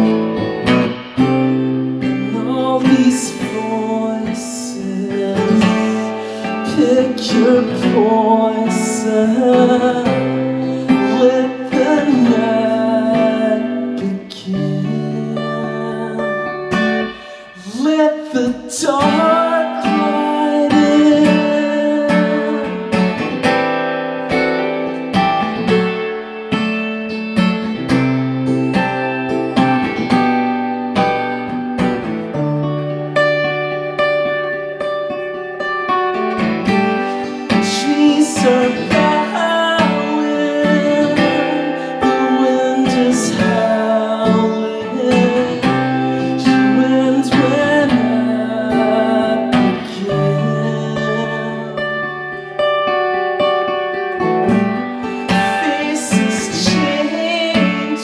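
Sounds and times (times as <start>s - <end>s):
acoustic guitar strummed: 0.0s - 58.0s
man singing: 1.2s - 23.6s, 32.3s - 33.3s, 36.7s - 52.6s, 54.4s - 58.0s.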